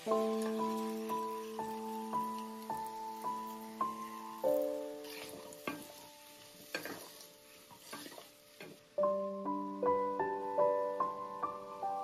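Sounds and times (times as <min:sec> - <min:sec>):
faint sizzle: 0:00.0 - 0:12.0
soft piano music: 0:00.0 - 0:12.0.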